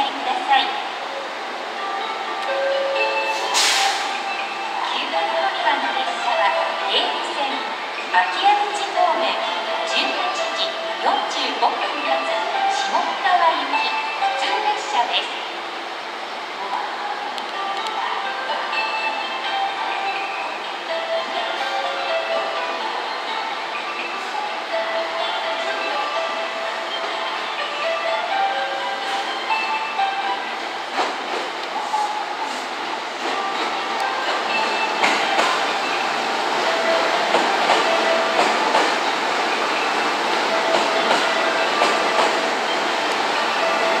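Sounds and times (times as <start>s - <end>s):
electric train running: 15.6s - 44.0s.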